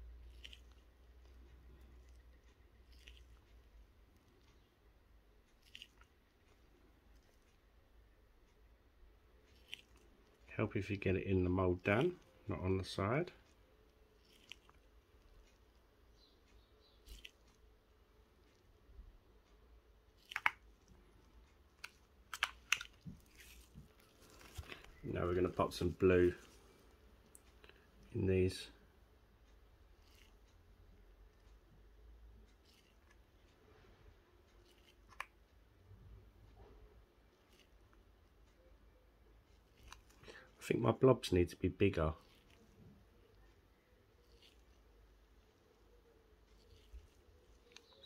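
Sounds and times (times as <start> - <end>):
faint handling sounds: 0.0 - 30.6, 31.2 - 48.0.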